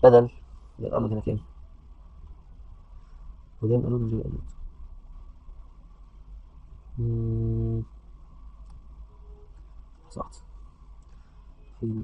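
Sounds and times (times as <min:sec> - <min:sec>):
man humming: 0:07.0 - 0:07.9.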